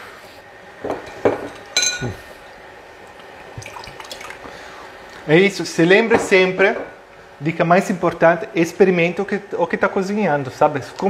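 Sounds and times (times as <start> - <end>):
glass clinking: 0.9 - 2.2
liquid sloshing: 2.4 - 5.2.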